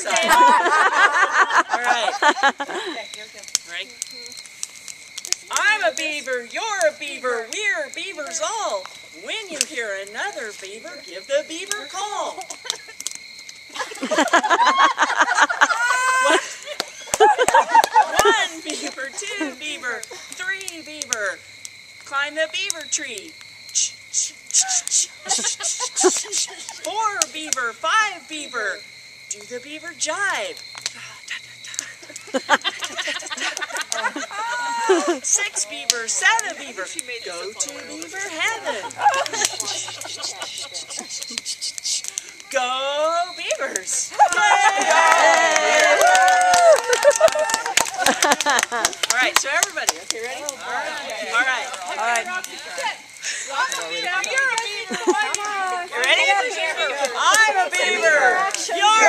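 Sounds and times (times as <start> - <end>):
women laughing and chattering: 0.0 - 4.4, 5.1 - 21.4, 22.1 - 59.0
campfire crackling pops: 0.0 - 59.0
people imitating animal cries: 15.6 - 16.6, 33.4 - 35.3, 37.6 - 42.5.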